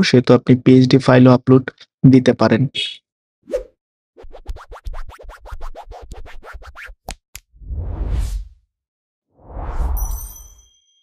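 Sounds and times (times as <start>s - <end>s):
deep whoosh: 7.6s - 8.6s.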